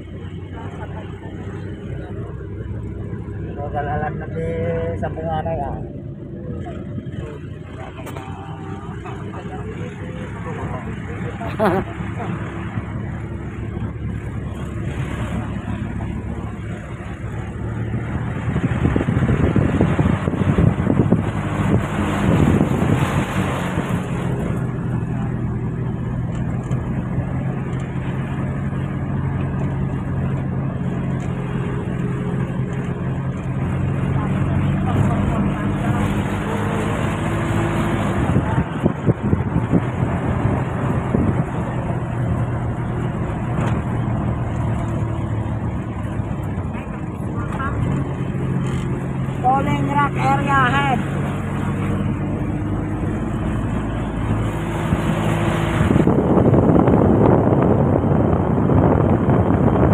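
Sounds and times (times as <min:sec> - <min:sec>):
large vehicle engine: 0:00.0 - 0:59.9
road noise: 0:00.0 - 0:59.9.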